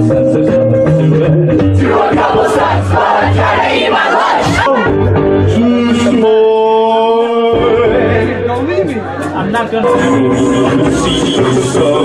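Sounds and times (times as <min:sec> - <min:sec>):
people talking and chattering: 0:00.7 - 0:12.0.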